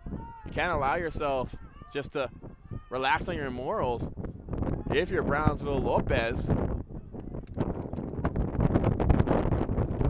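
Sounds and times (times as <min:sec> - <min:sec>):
wind blowing on microphone: 0:00.0 - 0:10.0.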